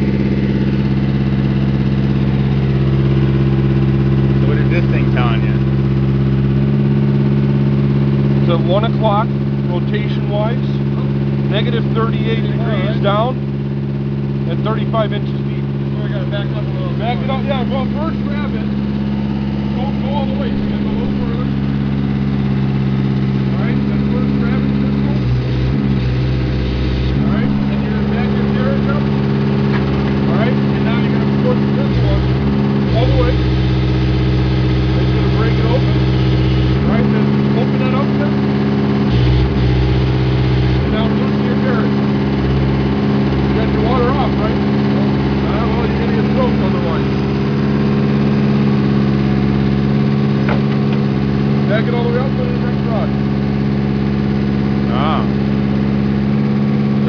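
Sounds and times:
drill engine running under load: 0.0 - 57.0.

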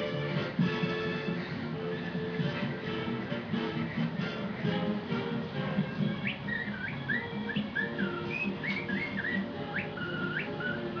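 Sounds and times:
recorded music: 0.0 - 11.0
whistled gliding melody: 5.9 - 11.0.

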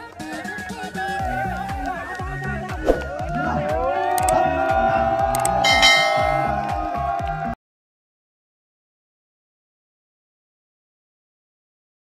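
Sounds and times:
background music with steady beat: 0.0 - 7.6
bright bell chime: 5.6 - 6.7.

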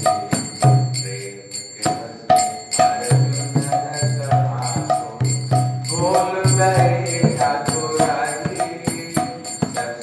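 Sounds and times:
hand cymbals ringing: 0.0 - 10.0
man chanting into microphone: 0.0 - 10.0.

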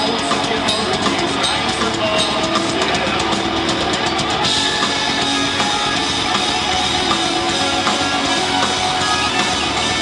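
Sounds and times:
bass guitar: 0.0 - 10.0
drums: 0.0 - 10.0
electric guitars: 0.0 - 10.0.

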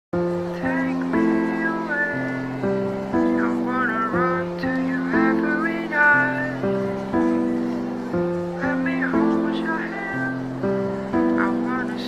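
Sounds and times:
held chords: 0.2 - 12.0.

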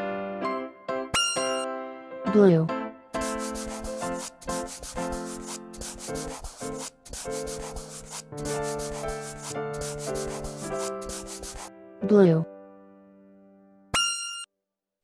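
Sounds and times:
simple background melody: 0.0 - 14.5
marker scribbling on paper: 1.2 - 1.6, 3.2 - 11.7.

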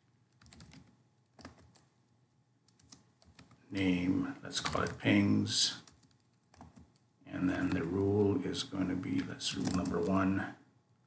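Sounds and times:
computer keyboard typing: 0.3 - 1.9, 2.6 - 3.6, 4.6 - 5.0, 5.8 - 8.3, 9.6 - 10.2.

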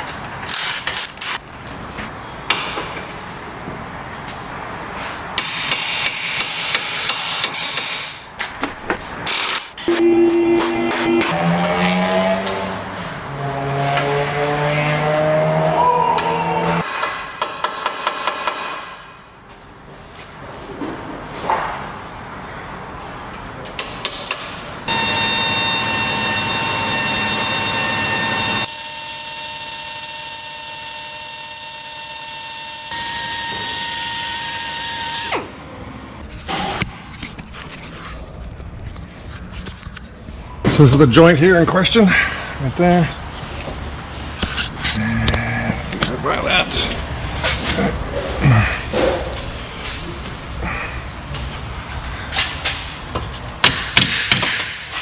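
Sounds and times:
power tool high whine: 24.9 - 36.2
tool motor rising in pitch: 24.9 - 36.2.

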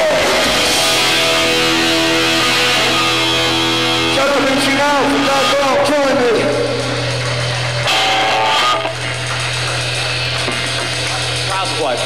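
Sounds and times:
amp noise: 0.0 - 12.0
electric guitar and bass sustained note: 0.0 - 12.0
short guitar figure: 7.8 - 9.2.

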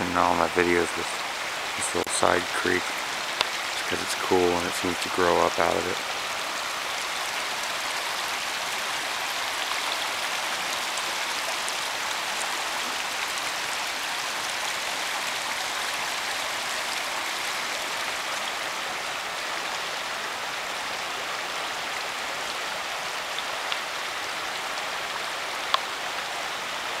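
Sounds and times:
water rushing over riffles: 0.0 - 27.0.

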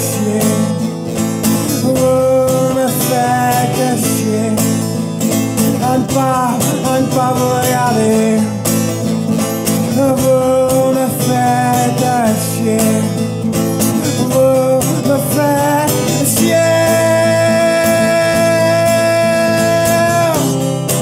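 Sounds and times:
man singing: 0.0 - 21.0
strummed acoustic guitar: 0.0 - 21.0.

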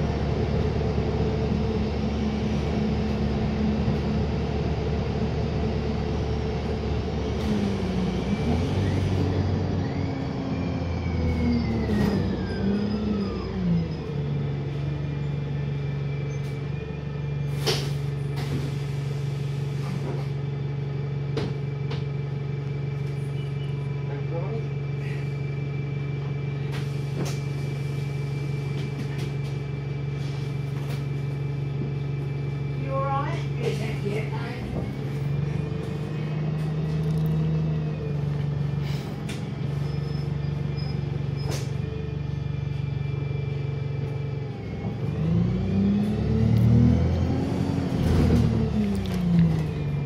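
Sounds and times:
bus diesel engine whine: 0.0 - 50.0.

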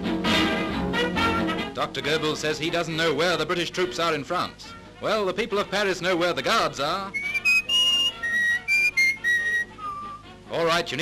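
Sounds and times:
whistled tune: 7.1 - 10.4.

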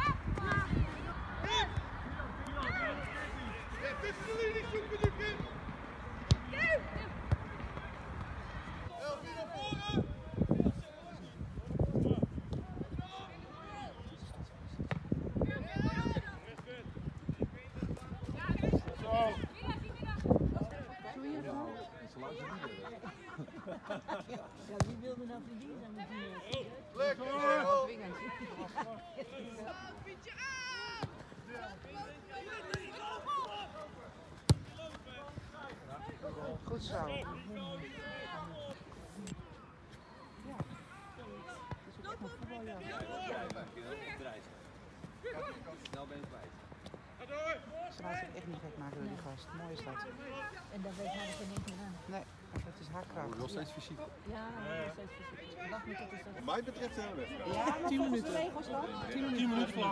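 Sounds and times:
wind noise on microphone: 0.0 - 1.2, 9.6 - 13.0, 14.3 - 20.9
soccer ball kicked: 6.2 - 8.5, 34.4 - 37.3
distant shouts of players: 29.8 - 36.4.

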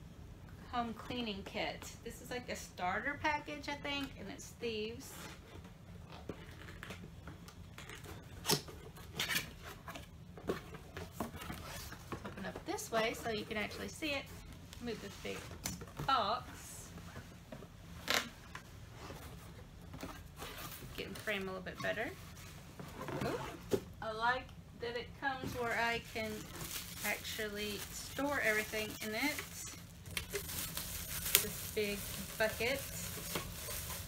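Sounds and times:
cardboard box being handled: 25.5 - 34.0
paper rustling: 25.5 - 34.0.

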